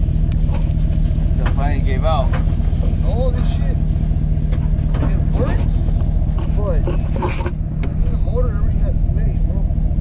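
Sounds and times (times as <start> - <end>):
truck engine idling: 0.0 - 10.0
voices talking: 0.4 - 10.0.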